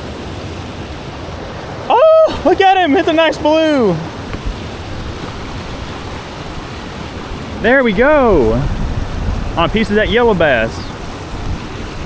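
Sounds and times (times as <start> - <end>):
water rushing over a spillway: 0.0 - 12.0.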